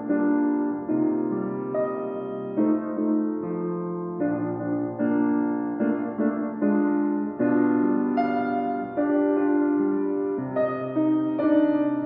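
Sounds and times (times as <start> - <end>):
slow piano chords: 0.0 - 12.0.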